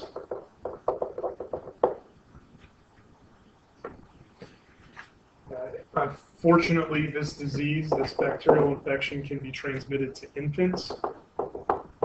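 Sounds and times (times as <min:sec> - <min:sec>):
stylus tapping on tablet: 0:00.0 - 0:02.1, 0:10.7 - 0:12.0.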